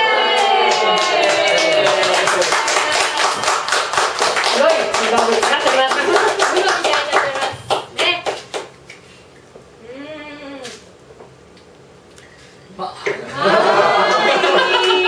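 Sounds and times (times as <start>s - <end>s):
audience clapping: 0.0s - 8.8s.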